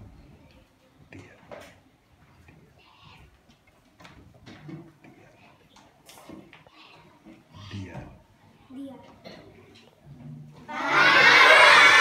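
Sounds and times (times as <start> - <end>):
children shouting and cheering: 10.7 - 12.0.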